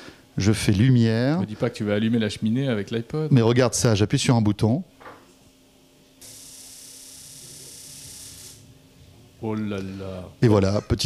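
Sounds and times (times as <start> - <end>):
high-pitched gas hiss: 6.2 - 8.7.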